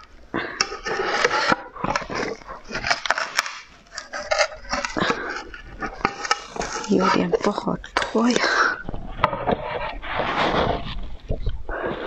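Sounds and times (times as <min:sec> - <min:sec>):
sharp clicks of rubber mould: 0:00.0 - 0:05.2
rubber mould rubbing and squeaking: 0:00.0 - 0:12.0.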